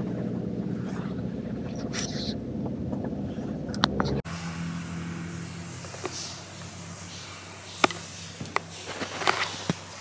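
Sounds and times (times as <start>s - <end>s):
car engine and road rumble: 0.0s - 10.0s
steady low hum: 0.0s - 10.0s.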